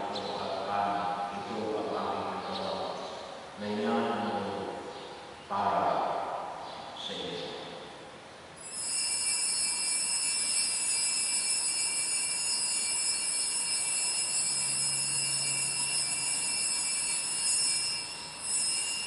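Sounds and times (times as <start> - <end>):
altar bells ringing: 8.6 - 19.0.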